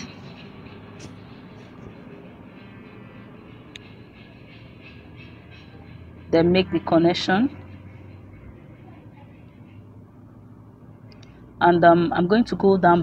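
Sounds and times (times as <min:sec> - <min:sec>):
light tick: 0:11.1 - 0:11.4.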